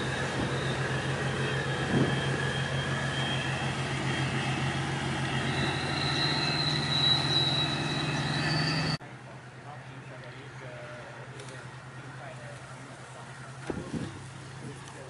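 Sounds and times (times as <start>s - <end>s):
thin high-pitched whines: 0.0s - 9.0s
engine drone with pulsing hum: 0.0s - 15.0s.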